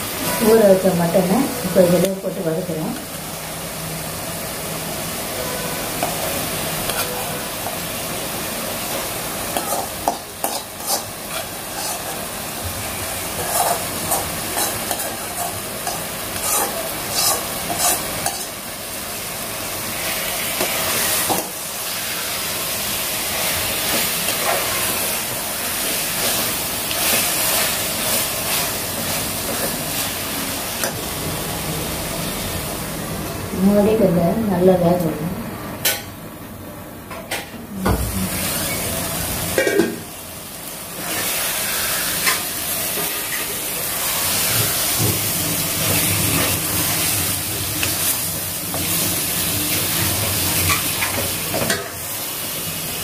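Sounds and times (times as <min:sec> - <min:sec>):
meat sizzling in a pot: 0:00.0 - 0:32.9, 0:38.1 - 0:53.0
steel spoon scraping a pan: 0:06.0 - 0:07.4, 0:09.6 - 0:12.3, 0:13.4 - 0:18.5.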